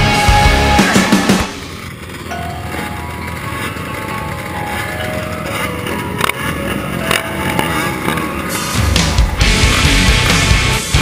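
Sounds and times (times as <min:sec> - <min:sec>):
heavy rock music: 0:00.0 - 0:02.6, 0:08.1 - 0:11.0
quad engines idling: 0:00.0 - 0:11.0.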